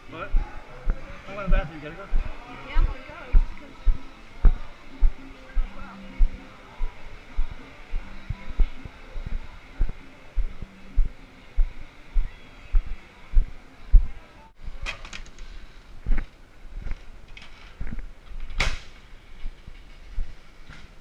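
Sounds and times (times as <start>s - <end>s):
music: 0.0s - 14.6s
faint voices: 0.0s - 17.0s.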